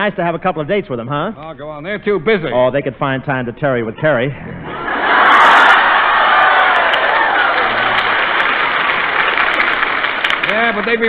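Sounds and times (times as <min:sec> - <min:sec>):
audience laughing and applauding: 0:04.7 - 0:11.0.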